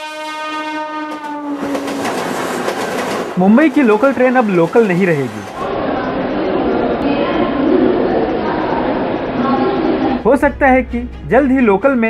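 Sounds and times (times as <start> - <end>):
train horn: 0.0 - 2.1
rolling noise of moving train: 0.0 - 11.4.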